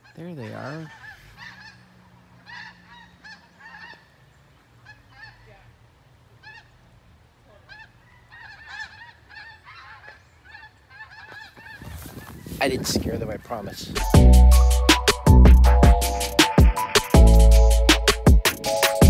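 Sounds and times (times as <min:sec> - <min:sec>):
geese honking: 0:00.0 - 0:12.6.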